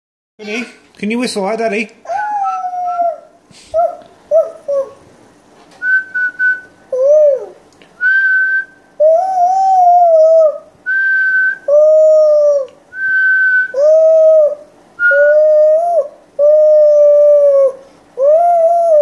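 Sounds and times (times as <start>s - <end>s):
child hooting through lips: 2.0s - 5.0s, 6.9s - 7.7s, 9.0s - 10.7s, 11.6s - 12.8s, 13.4s - 19.0s.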